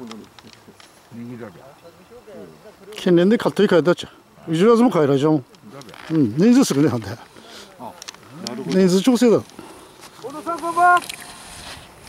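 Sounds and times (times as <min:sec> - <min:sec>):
people shouting drawn-out calls: 0:10.2 - 0:11.2.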